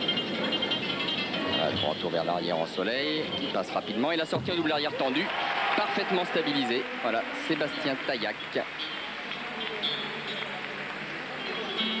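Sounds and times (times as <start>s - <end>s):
music: 0.0s - 4.8s, 6.4s - 12.0s.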